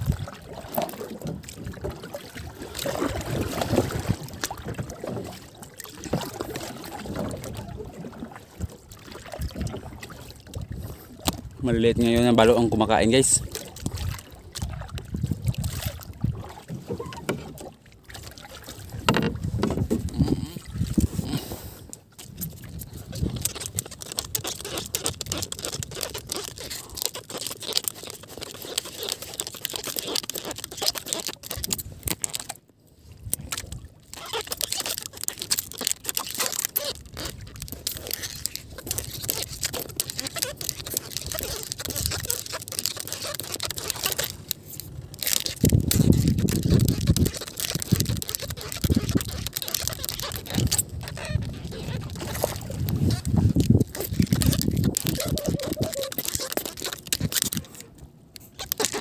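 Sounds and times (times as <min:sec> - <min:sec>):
water lapping against boat hull: 0:00.0 - 0:59.0
knocks and slaps on boat: 0:19.0 - 0:20.1.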